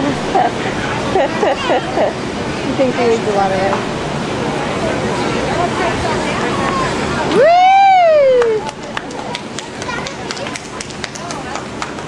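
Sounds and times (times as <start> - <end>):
distant children's voices: 8.7 - 12.0.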